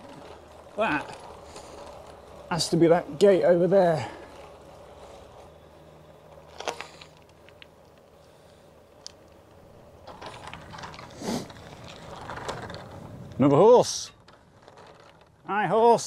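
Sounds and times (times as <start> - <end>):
bike rolling on a lane: 0.0 - 16.0.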